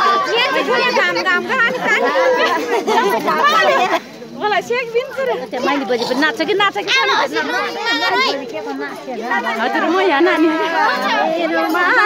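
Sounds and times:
women chattering loudly: 0.0 - 12.0.

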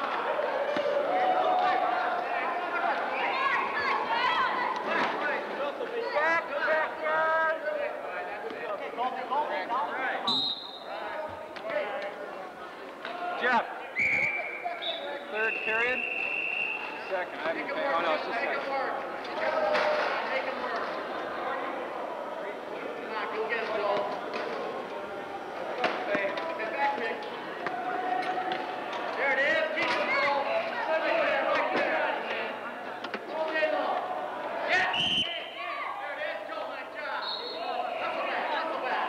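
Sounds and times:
indistinct echoing voices: 0.0 - 39.0.

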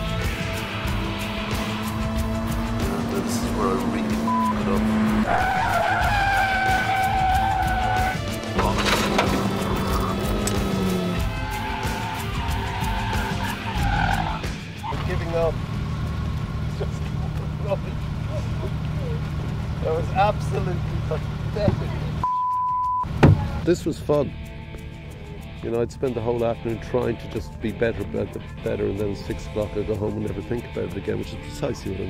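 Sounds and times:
car engine at speed: 0.0 - 22.2
tyres squealing: 1.1 - 15.4.

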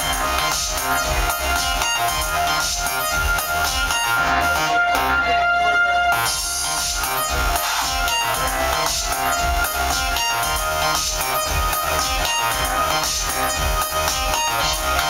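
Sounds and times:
pulsing bass beat: 0.0 - 15.0
repeating synthesizer notes: 0.0 - 15.0.

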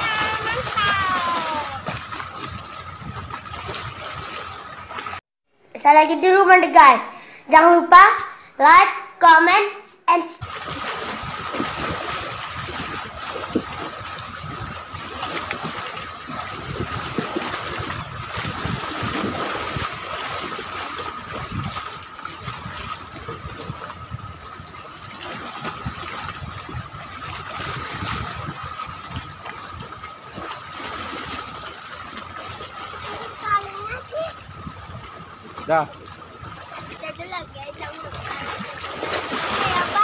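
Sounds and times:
water lapping against seawall: 0.0 - 5.2, 10.4 - 40.0.

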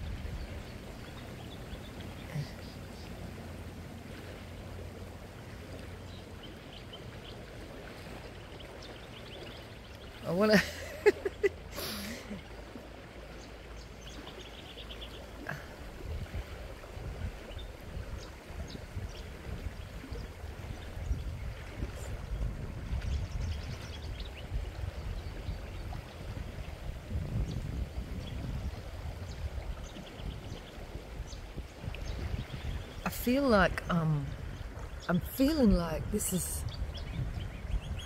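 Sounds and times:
low uneven rumble: 0.0 - 38.0.

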